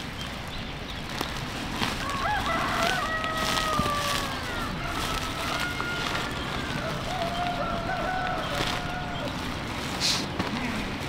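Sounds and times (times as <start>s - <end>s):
rooster crowing: 2.0s - 9.4s.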